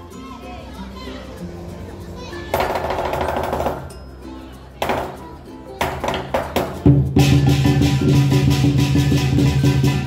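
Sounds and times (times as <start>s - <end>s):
drumming: 5.8s - 10.0s.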